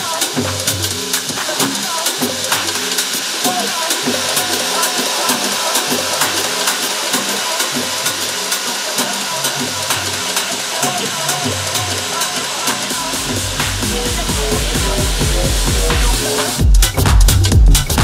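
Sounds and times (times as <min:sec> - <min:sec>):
hi-hats ticking: 0:00.0 - 0:18.0
house music over club sound system: 0:00.0 - 0:18.0.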